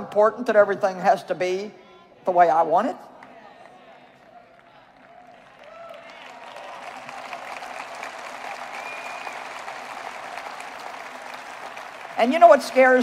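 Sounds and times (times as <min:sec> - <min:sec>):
audience applauding: 0:03.2 - 0:13.0.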